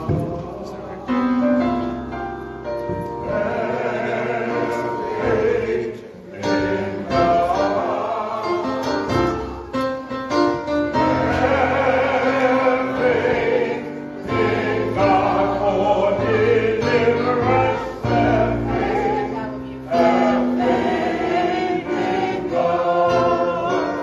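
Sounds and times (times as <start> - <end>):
gospel choir singing a hymn: 0.0 - 24.0
instrumental accompaniment: 0.0 - 24.0.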